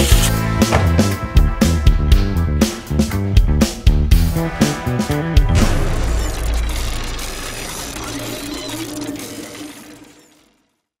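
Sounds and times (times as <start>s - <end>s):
mechanical gear sound effects: 5.7s - 10.8s.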